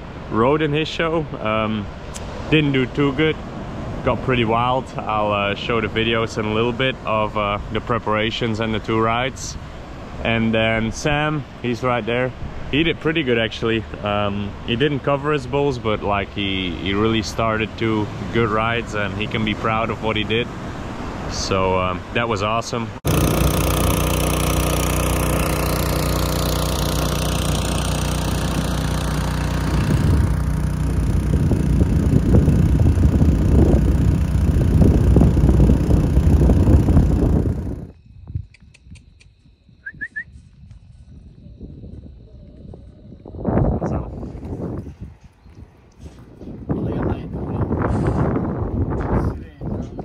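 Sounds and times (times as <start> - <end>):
motor running: 23.0 - 37.9.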